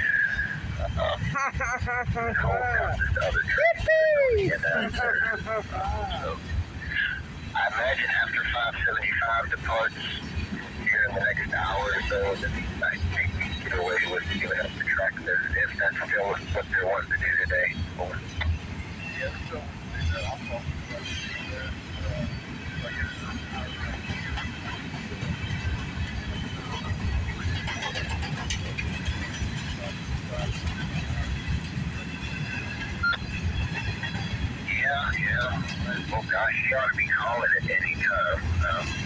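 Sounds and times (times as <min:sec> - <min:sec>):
freight train rumbling past: 0:00.0 - 0:39.0.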